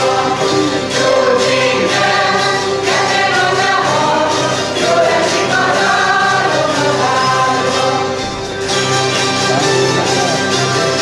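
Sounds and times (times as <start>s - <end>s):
group singing together: 0.0s - 9.4s.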